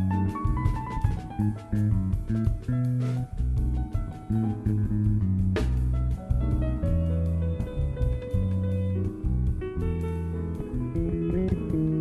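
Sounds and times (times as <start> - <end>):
drums: 0.0 - 12.0
electric bass low notes: 0.0 - 12.0
piano: 0.0 - 12.0.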